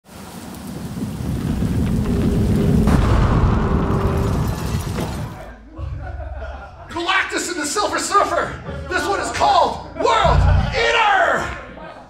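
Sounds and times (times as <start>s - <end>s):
deep rumbling: 1.0s - 7.1s, 10.0s - 11.6s.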